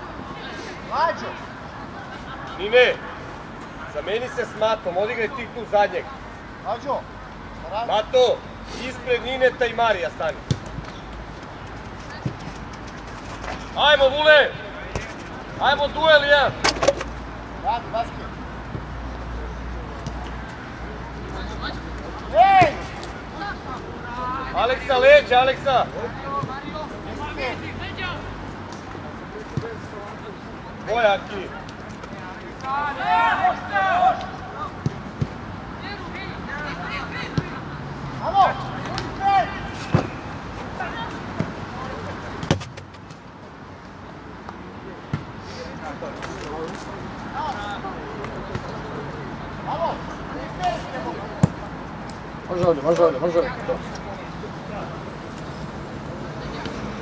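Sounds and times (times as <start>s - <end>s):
players and coaches shouting: 21.4s - 28.4s, 32.6s - 34.9s, 35.7s - 42.3s
football being kicked: 42.4s - 42.9s.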